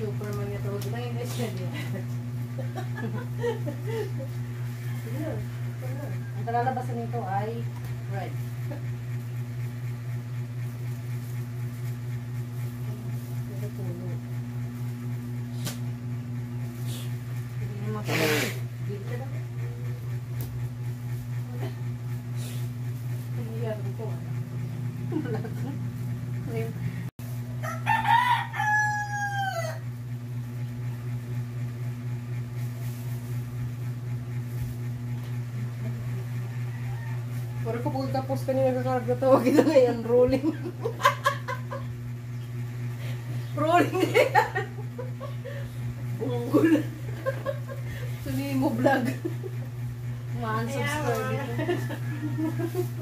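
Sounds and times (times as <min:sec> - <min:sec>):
steady low hum: 0:00.0 - 0:53.0
rooster crowing: 0:27.5 - 0:30.0, 0:36.3 - 0:38.1, 0:51.3 - 0:53.0.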